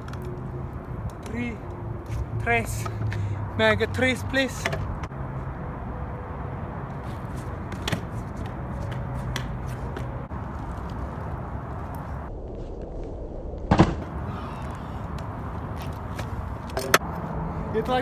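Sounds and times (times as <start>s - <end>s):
scooter wheels rolling on asphalt: 0.0s - 5.5s, 6.7s - 18.0s
scooter landing clack: 15.8s - 17.0s.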